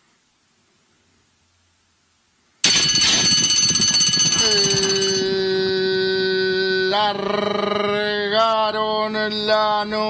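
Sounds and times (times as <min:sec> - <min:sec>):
starting bell ringing loudly: 0:02.6 - 0:06.0
race caller announcing: 0:04.2 - 0:06.6.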